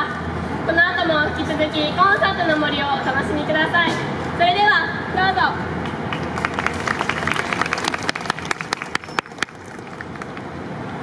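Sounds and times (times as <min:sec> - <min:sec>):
audience clapping: 0:05.8 - 0:10.5.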